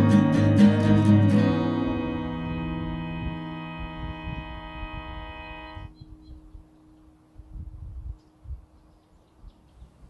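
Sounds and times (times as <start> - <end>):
strummed guitar chord: 0.0 - 5.9
steady low hum: 0.0 - 8.6.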